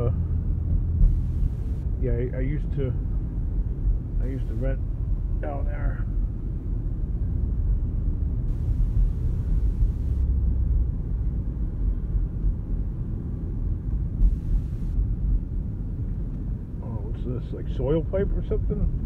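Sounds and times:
engine and tyre rumble: 0.0 - 19.0.

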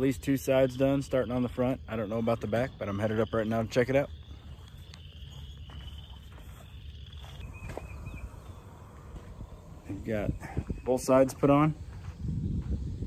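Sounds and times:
wind rumble on microphone: 7.3 - 13.0.

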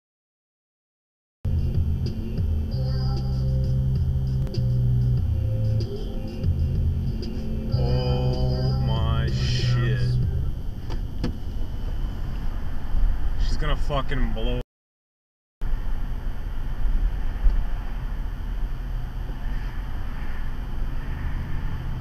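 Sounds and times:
rising whine: 1.5 - 13.6
vehicle engine and road noise: 1.5 - 14.6, 15.6 - 22.0.

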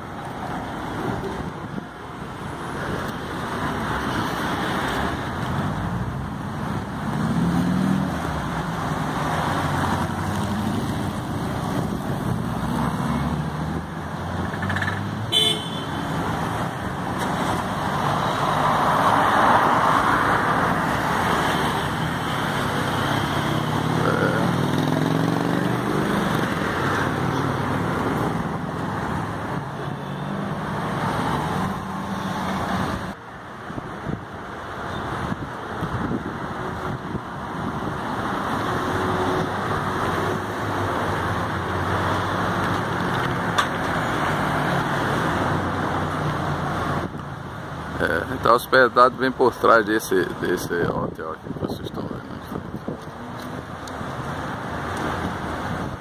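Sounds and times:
car engines passing: 0.0 - 56.0.

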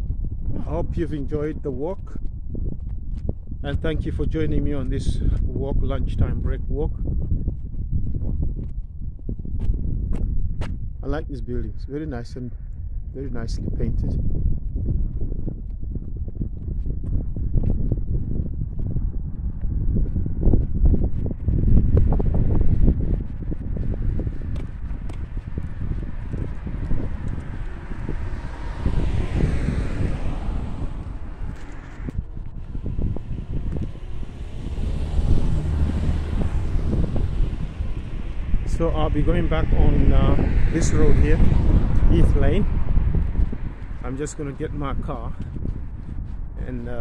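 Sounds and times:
wind buffeting microphone: 0.0 - 47.0
cars passing: 21.4 - 46.6.

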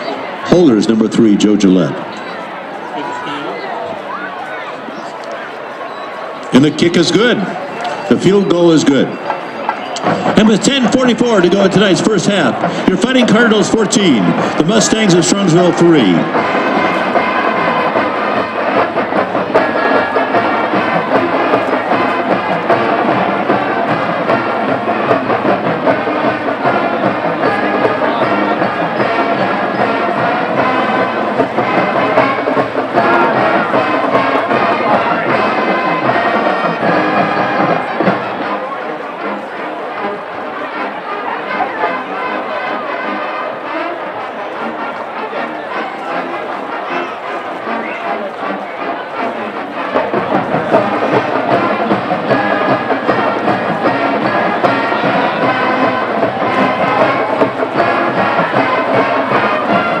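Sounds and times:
stadium crowd noise: 0.0 - 60.0
band music with brass: 5.7 - 60.0.

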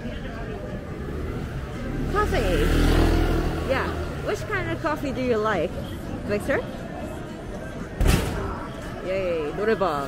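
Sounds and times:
passersby talking: 0.0 - 10.0
vehicle engine passing: 0.8 - 5.0.

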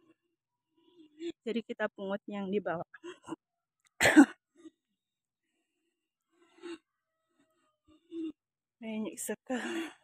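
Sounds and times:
person coughing: 4.0 - 4.4.

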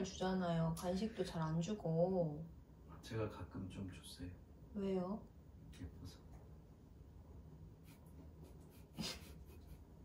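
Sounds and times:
stifled laugh: 8.7 - 10.0.

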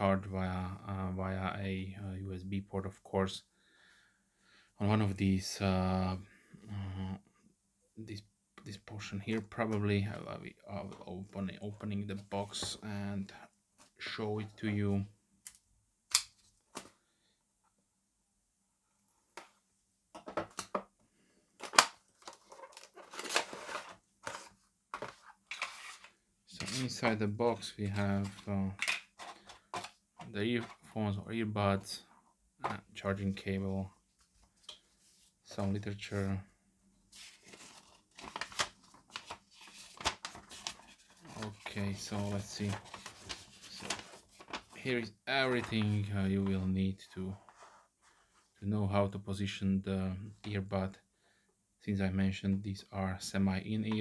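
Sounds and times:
paper rustling and crinkling: 21.6 - 28.5, 29.2 - 30.9, 37.1 - 46.6
sharp paper crackles: 37.2 - 44.8.

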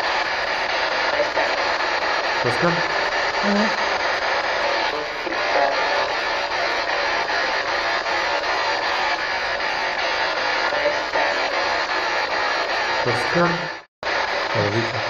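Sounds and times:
fragments of radio broadcast: 0.0 - 15.0
radio static: 0.0 - 15.0.

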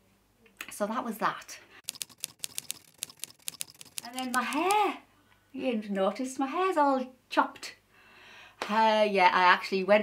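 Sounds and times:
sharp irregular clicks: 1.8 - 4.9.

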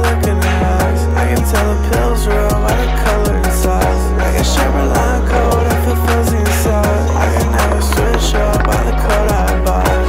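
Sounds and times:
music with bass line: 0.0 - 10.0
skateboard rolling on concrete: 1.5 - 10.0.

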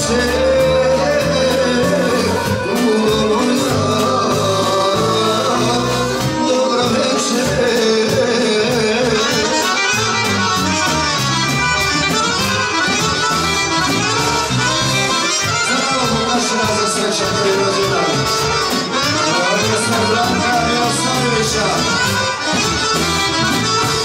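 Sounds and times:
accordion solo: 0.0 - 24.0
steady drum beat: 0.0 - 24.0.

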